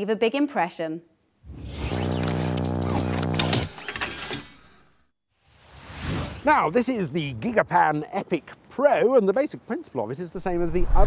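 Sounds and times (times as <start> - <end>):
held electronic chord: 1.8 - 3.7.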